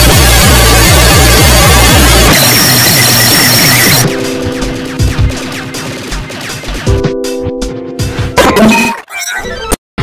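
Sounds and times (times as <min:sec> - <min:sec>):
distorted electronic music: 0:00.0 - 0:09.8.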